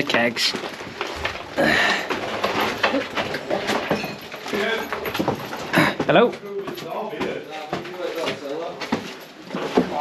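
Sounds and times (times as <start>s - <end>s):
footsteps on gritty stairs: 0.0s - 10.0s.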